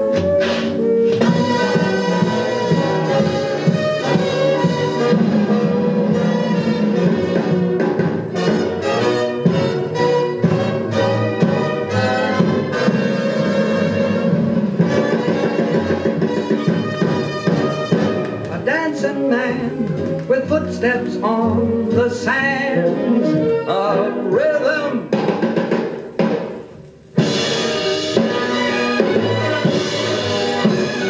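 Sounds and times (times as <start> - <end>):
orchestral strings music: 0.0 - 25.2, 27.1 - 31.0.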